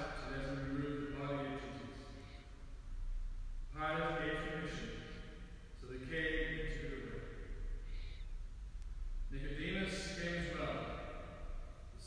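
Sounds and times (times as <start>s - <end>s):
man speaking: 0.0s - 2.4s, 3.7s - 7.6s, 9.3s - 12.0s
church room rumble: 0.0s - 12.0s.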